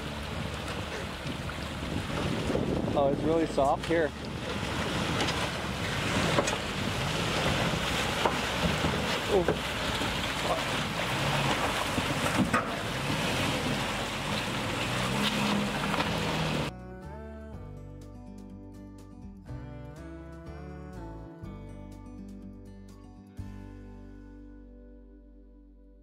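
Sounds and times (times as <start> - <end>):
truck engine revving: 0.0 - 16.7
tyres on rock and gravel: 0.0 - 16.7
water splashing: 0.0 - 16.7
wind on microphone: 0.3 - 10.2
guitar music: 15.7 - 26.0.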